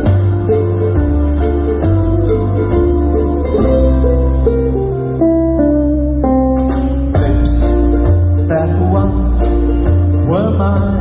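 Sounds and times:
sustained low bass notes: 0:00.0 - 0:11.0
ukulele melody: 0:00.0 - 0:11.0.

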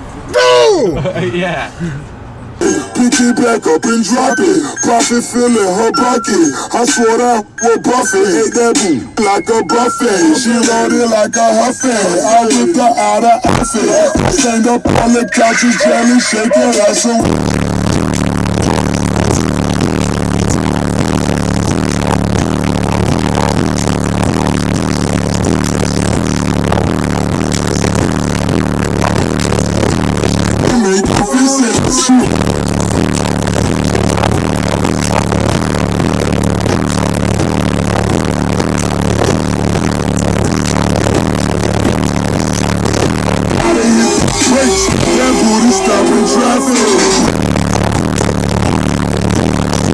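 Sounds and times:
rap music with heavy bass: 0:02.6 - 0:49.9.

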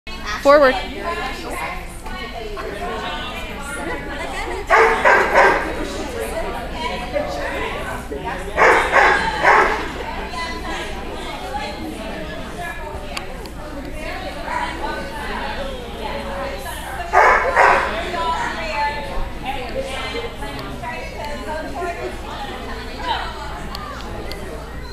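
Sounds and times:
murmur of voices: 0:00.1 - 0:24.9
dog barking: 0:04.7 - 0:05.7, 0:08.6 - 0:09.9, 0:17.2 - 0:18.0.

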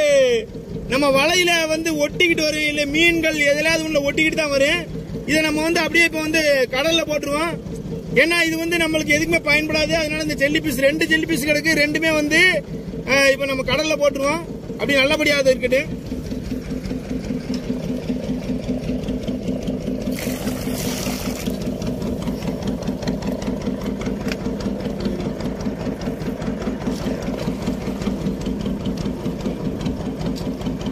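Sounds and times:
boat engine chugging: 0:00.0 - 0:30.9
water splash: 0:20.0 - 0:22.0.

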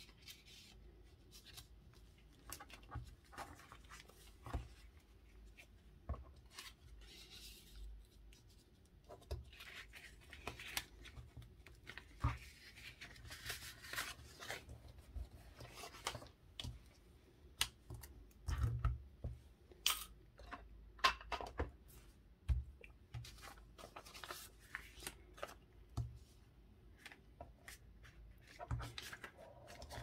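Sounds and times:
hands handling paper and card: 0:00.0 - 0:19.0, 0:21.9 - 0:30.0
pages turning: 0:06.2 - 0:16.7, 0:23.2 - 0:25.6, 0:27.0 - 0:30.0.

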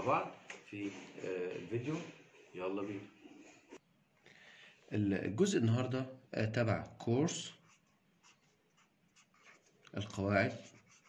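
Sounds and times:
felt-tip marker scratching paper: 0:07.5 - 0:11.0.

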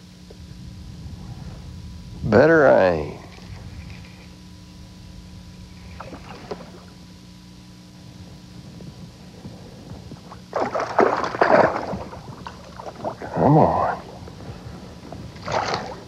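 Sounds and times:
steady low hum: 0:00.0 - 0:16.0
fish splashing at surface: 0:10.5 - 0:13.0.

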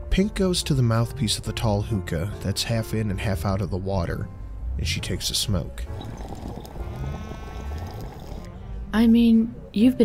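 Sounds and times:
hookah water bubbling: 0:05.8 - 0:08.6.

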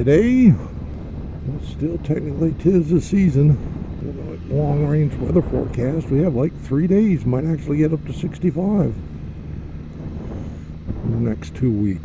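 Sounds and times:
motorcycle engine cruising: 0:00.0 - 0:12.0
wind noise on microphone: 0:00.0 - 0:12.0.

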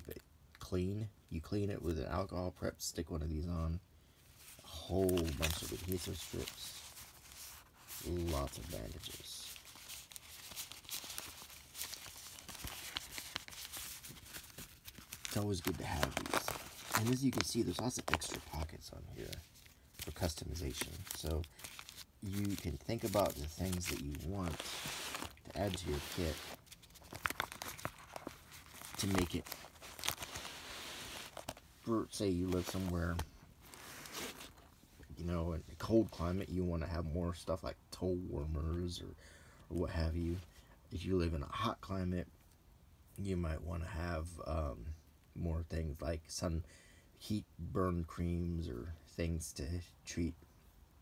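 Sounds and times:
paper wrappers rustling and crinkling: 0:04.3 - 0:34.8.

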